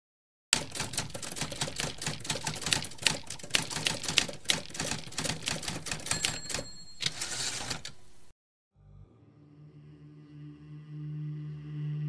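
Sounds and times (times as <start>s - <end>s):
typewriter keys clacking: 0.6s - 8.2s.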